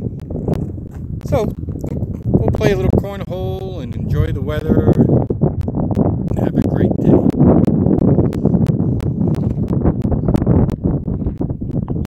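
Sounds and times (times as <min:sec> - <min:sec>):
wind rumbling on microphone: 0:00.0 - 0:12.0
sharp ticks: 0:00.2 - 0:03.0, 0:03.9 - 0:12.0.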